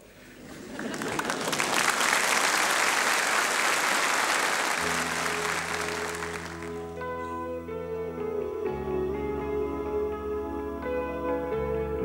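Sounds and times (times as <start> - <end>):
studio audience applauding: 0.5 - 7.0
held low instrumental chord: 4.8 - 12.0.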